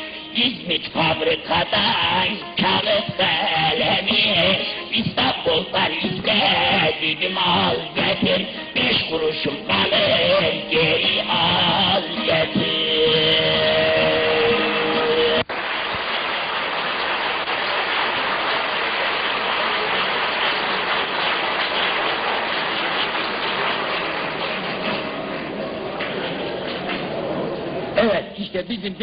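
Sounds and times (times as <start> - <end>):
man singing: 0.0 - 15.4
audience applause: 14.5 - 27.4.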